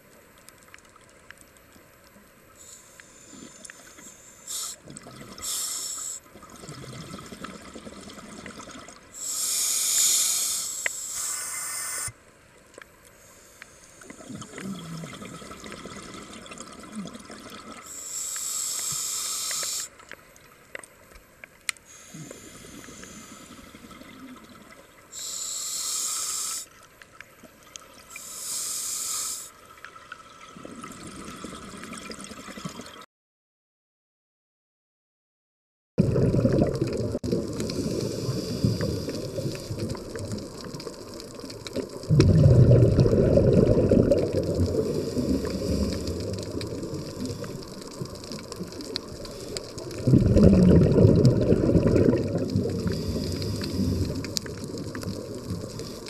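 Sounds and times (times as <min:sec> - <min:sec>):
regulator breath hissing: 0:02.6 - 0:04.8, 0:05.4 - 0:06.2, 0:09.2 - 0:12.2, 0:17.9 - 0:20.0, 0:21.9 - 0:23.7, 0:25.1 - 0:26.7, 0:28.1 - 0:29.6, 0:37.7 - 0:39.8, 0:52.8 - 0:54.0
bubbling exhaled air: 0:14.1 - 0:17.8, 0:36.0 - 0:56.0.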